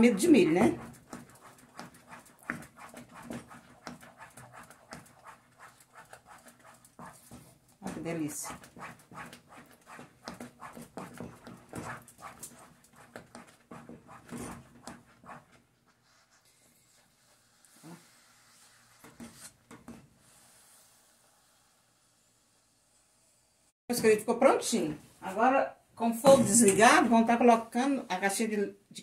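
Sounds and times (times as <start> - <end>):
spatula scraping pudding in pot: 0.0 - 21.8.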